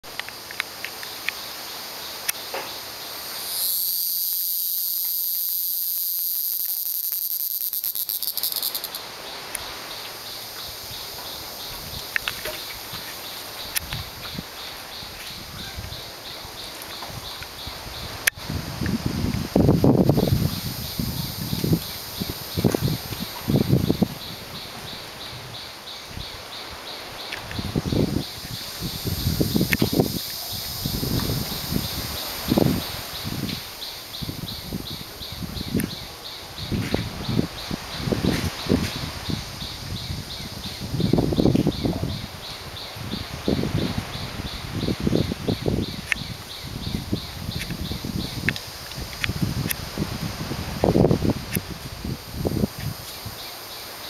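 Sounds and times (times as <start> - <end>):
insects buzzing with pulsing trill: 0.0 - 54.0.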